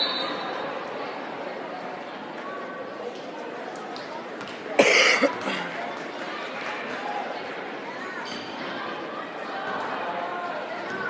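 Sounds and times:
murmur of chatter: 0:00.0 - 0:11.0
loud cough: 0:04.8 - 0:05.7.

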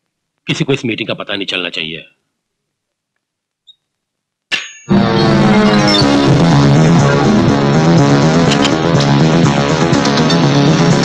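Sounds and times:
man's voice: 0:00.5 - 0:02.1
faint high-pitched chirp: 0:03.6 - 0:03.9.

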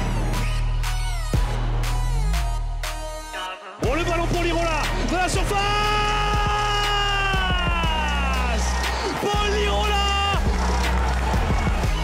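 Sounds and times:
hip hop music with deep bass: 0:00.0 - 0:12.0.

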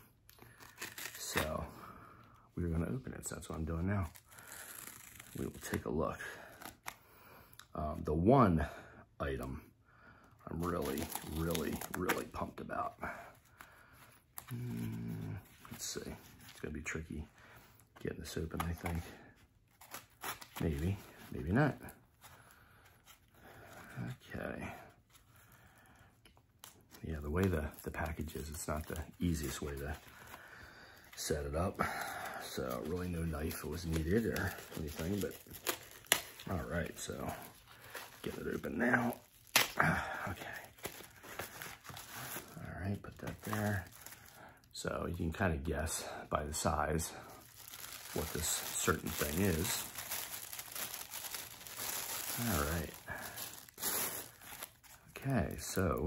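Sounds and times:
packaging rustling: 0:10.6 - 0:12.6, 0:26.6 - 0:44.5, 0:46.6 - 0:56.0.

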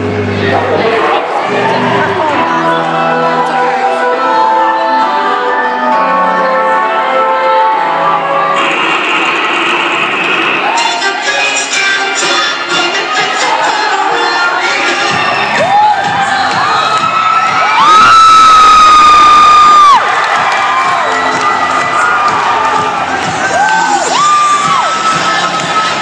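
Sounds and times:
crowd cheering and shouting: 0:00.0 - 0:26.0.

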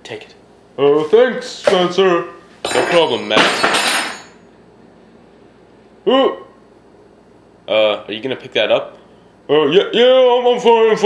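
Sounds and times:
metal knife clattering on table: 0:02.7 - 0:04.4.

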